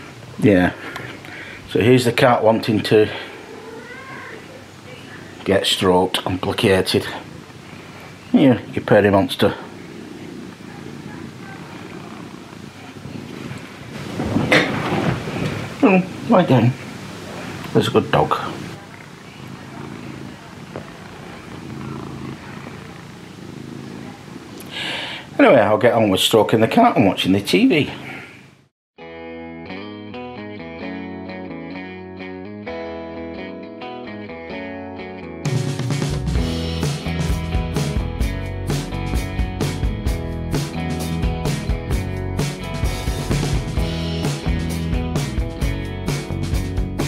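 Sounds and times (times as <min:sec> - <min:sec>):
cat purring: 0:02.1 - 0:26.1
cat meowing: 0:03.2 - 0:04.7, 0:09.7 - 0:13.6, 0:19.0 - 0:24.6
short breathy noise: 0:24.6 - 0:25.4.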